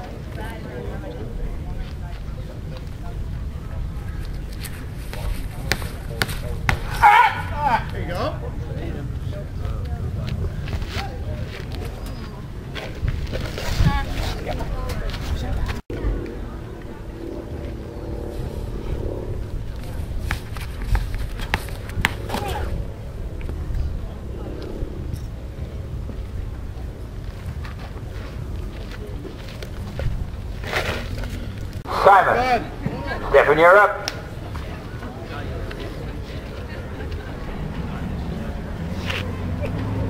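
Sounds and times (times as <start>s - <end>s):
faint distant voices: 0.0s - 40.0s
person yelling: 6.9s - 7.9s
wind rumble on microphone: 8.4s - 31.9s.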